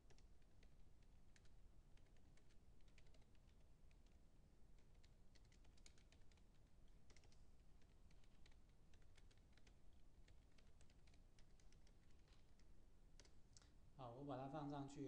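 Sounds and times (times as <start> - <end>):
faint keyboard typing: 0.0 - 15.0.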